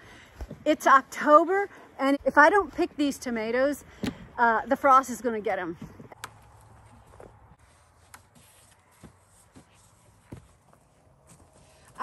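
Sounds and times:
faint footsteps: 0:05.6 - 0:12.0.

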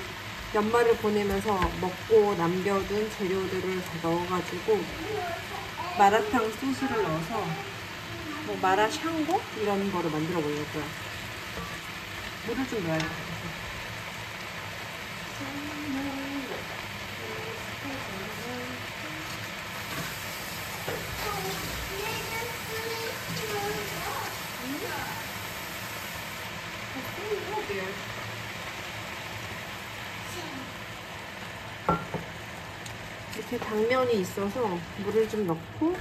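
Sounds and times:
food sizzling in a pan: 0:00.0 - 0:36.0.

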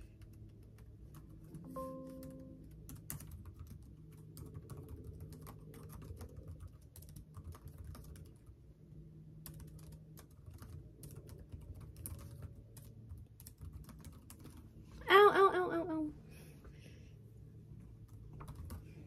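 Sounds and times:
typing on a computer keyboard: 0:00.0 - 0:08.6, 0:09.3 - 0:14.8, 0:18.1 - 0:19.0.

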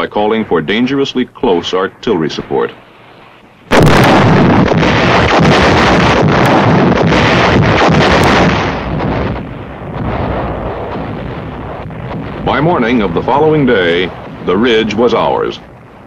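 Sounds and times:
artillery gunfire and shell bursts: 0:03.7 - 0:16.0
rolling rumble: 0:03.7 - 0:16.0.

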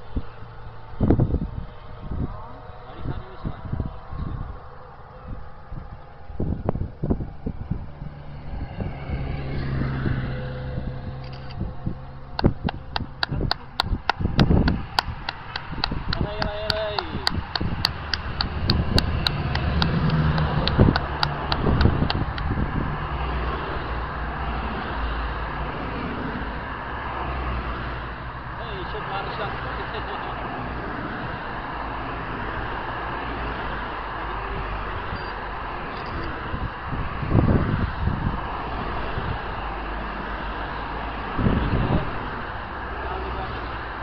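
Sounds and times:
motor vehicles passing: 0:00.0 - 0:44.0
sharp evenly spaced clicks: 0:12.4 - 0:22.5
brief tone: 0:35.2 - 0:35.4.

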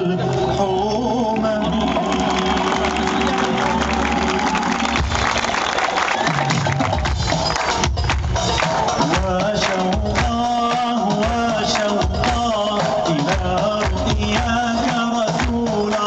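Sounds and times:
live band music: 0:00.0 - 0:16.0
audience cheering and clapping: 0:00.3 - 0:16.0.

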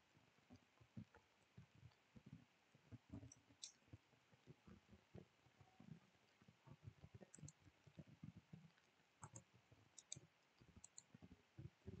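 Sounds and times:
faint low knocks and desk noise: 0:00.4 - 0:12.0.

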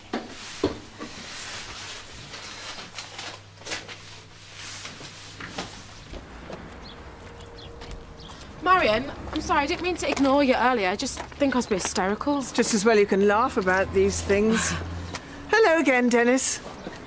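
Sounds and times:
woman speaking: 0:08.6 - 0:16.7.

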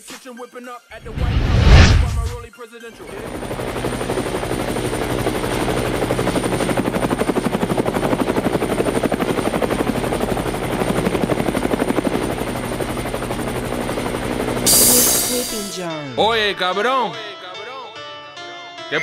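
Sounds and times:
helicopter rotor beating: 0:03.0 - 0:15.8
high whine: 0:14.5 - 0:15.8.

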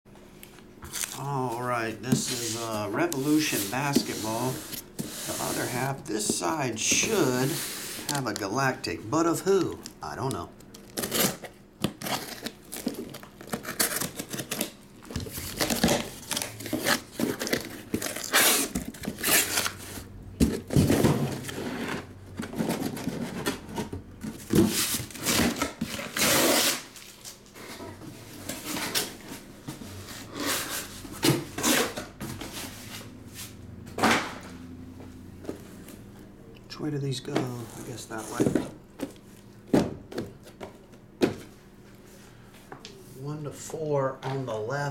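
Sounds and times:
tape tearing: 0:00.8 - 0:01.5, 0:09.4 - 0:19.9, 0:24.6 - 0:27.4.

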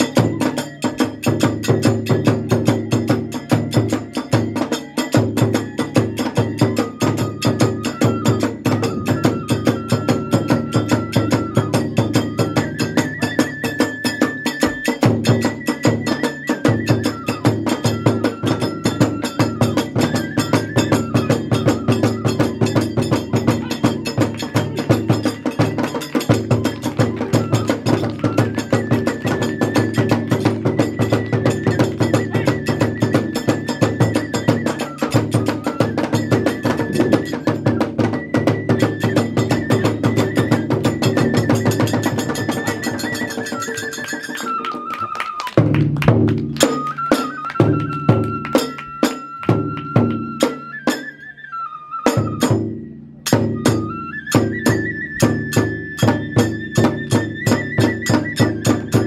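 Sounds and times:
barrel drum beat: 0:00.0 - 0:44.0, 0:45.6 - 0:50.8
hand cymbals: 0:00.0 - 0:44.8, 0:52.1 - 0:59.0
bamboo flute melody: 0:00.0 - 0:59.0.

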